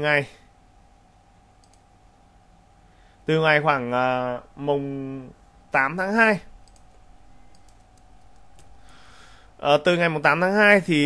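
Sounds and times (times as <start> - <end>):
computer mouse clicks: 1.6 - 1.9, 6.6 - 8.9.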